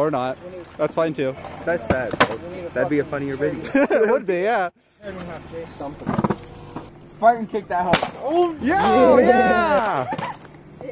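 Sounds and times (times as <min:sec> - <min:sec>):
people talking indistinctly: 0:00.0 - 0:10.9.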